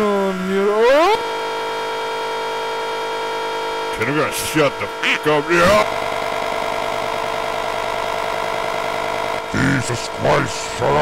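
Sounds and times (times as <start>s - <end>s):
buzzy electronic tone: 0.0s - 11.0s.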